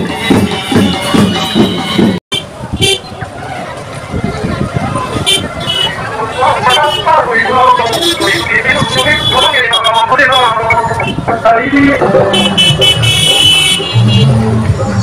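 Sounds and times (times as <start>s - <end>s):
people chattering: 0.0s - 12.6s
traffic engine noise: 0.0s - 15.0s
motorbike horn toots: 12.3s - 14.4s.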